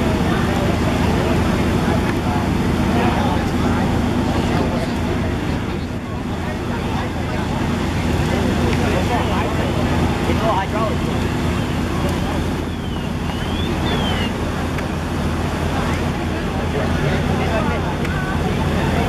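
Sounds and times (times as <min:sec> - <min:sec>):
fire engine pump humming: 0:00.0 - 0:19.0
people talking: 0:00.0 - 0:19.0.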